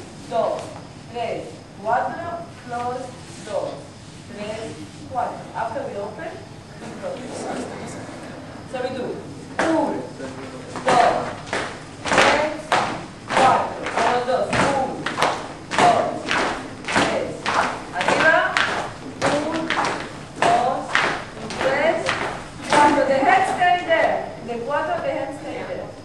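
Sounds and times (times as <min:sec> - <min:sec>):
voices: 0:00.3 - 0:26.0
flamenco dancers stamping rhythm: 0:09.5 - 0:10.0, 0:10.6 - 0:24.1.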